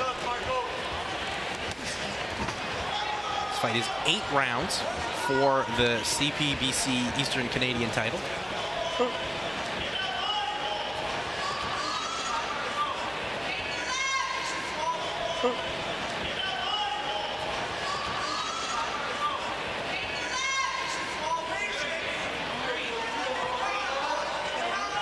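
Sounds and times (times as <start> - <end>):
people shouting: 0.0 - 7.6, 8.3 - 22.2
murmur of spectators: 0.0 - 25.0.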